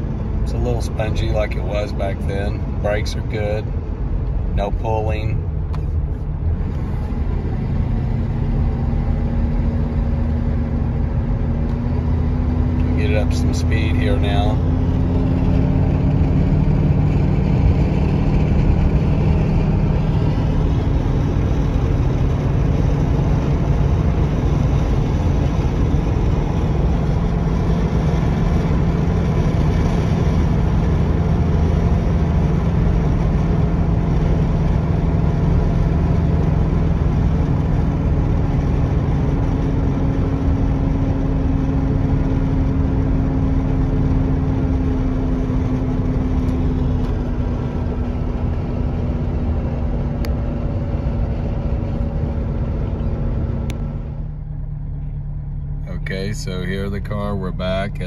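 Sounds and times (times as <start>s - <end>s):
car engine drone: 0.0s - 58.0s.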